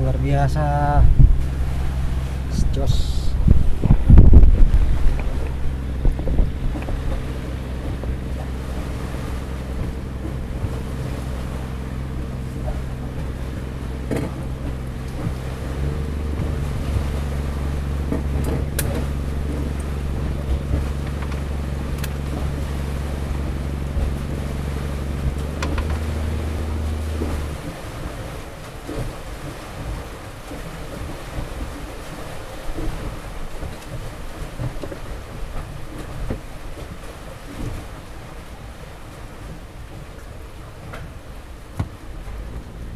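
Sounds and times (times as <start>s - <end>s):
boat engine running: 0.0s - 42.9s
water: 0.0s - 42.9s
wind: 0.0s - 42.9s.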